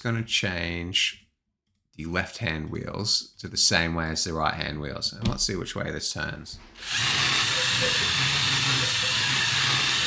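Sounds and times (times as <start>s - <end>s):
robot motors whirring: 6.8s - 10.0s.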